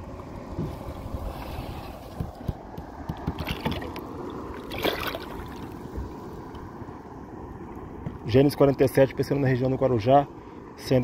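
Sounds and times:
water lapping against hull: 0.0s - 7.0s
wind rumbling on microphone: 0.0s - 9.5s
fish splashing into water: 3.3s - 5.8s.

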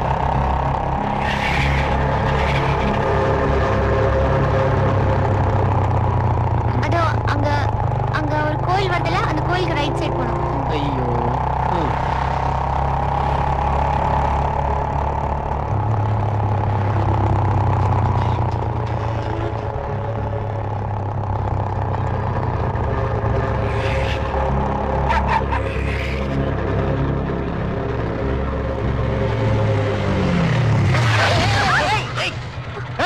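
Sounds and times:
low sustained background music: 0.0s - 31.0s
motorcycle engine running: 0.0s - 33.0s.

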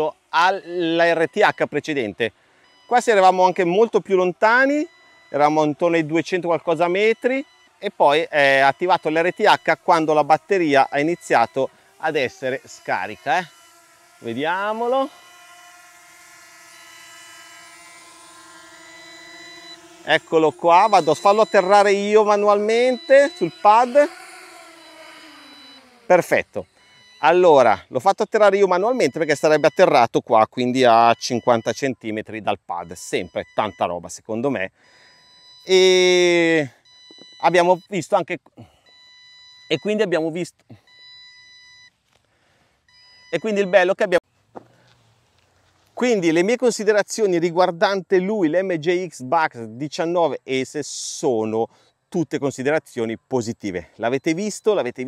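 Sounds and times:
electronic warning beeps: 0.8s - 2.0s, 2.6s - 27.9s, 28.7s - 30.0s, 30.9s - 32.0s, 32.8s - 34.1s, 35.0s - 38.1s, 38.9s - 41.9s, 42.9s - 44.2s, 54.1s - 55.0s
drone propellers whining: 2.6s - 27.9s.

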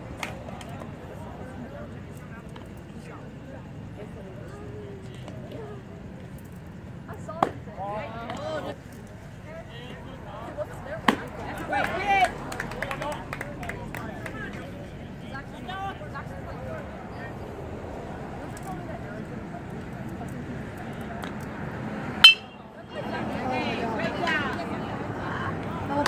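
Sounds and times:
spectators chattering and calling out: 0.0s - 26.0s
crowd shouting: 10.3s - 14.8s, 22.2s - 26.0s
metal bat hitting ball: 22.2s - 22.6s.

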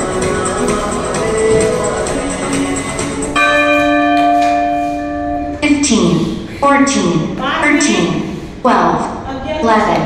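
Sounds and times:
music: 0.0s - 4.5s
bell chime ringing: 3.4s - 5.6s.

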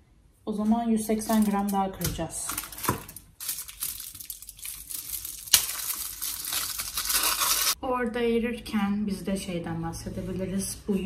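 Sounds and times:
foil wrapper crinkling: 1.2s - 7.8s
chocolate snapping: 1.3s - 7.8s.

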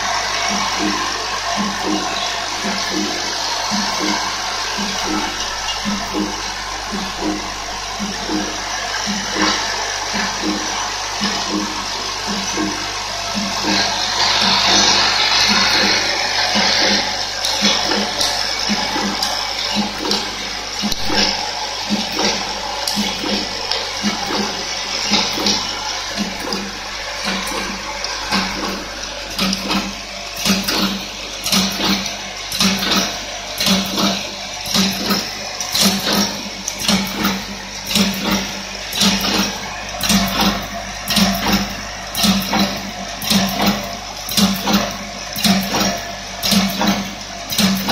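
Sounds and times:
vibratory bowl feeder hum: 0.0s - 47.9s.

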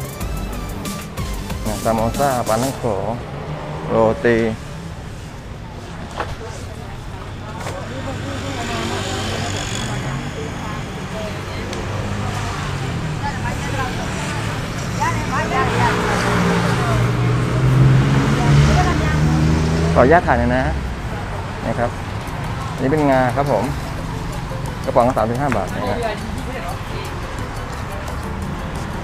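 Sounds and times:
people talking: 1.6s - 3.2s, 6.1s - 29.0s
vehicle engine running: 7.9s - 29.0s.

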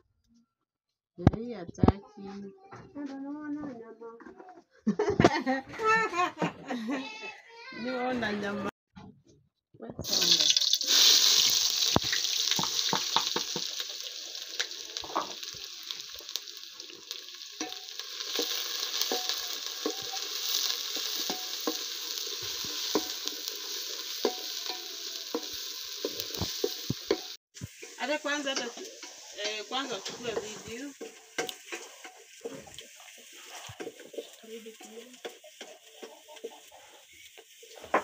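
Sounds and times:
onion sizzling in a pan: 10.0s - 38.0s
wooden spoon scraping a pan: 11.0s - 38.0s.

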